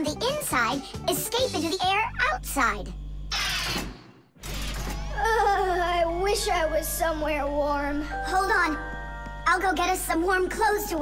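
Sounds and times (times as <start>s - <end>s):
low steady hum: 4.7s - 11.0s.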